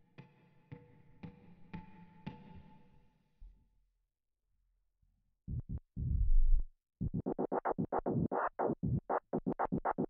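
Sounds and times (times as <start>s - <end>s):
low electronic thuds: 5.5s - 9.1s.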